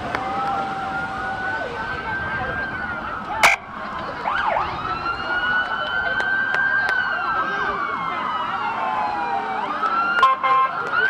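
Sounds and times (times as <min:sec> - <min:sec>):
police sirens wailing: 0:00.0 - 0:11.0.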